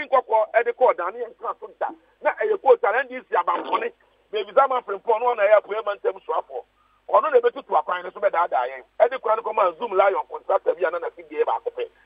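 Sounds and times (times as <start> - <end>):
man talking over telephone: 0.0 - 12.0.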